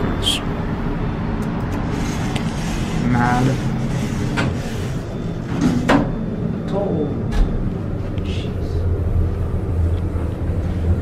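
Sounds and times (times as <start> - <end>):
elevator cab humming: 0.0 - 11.0.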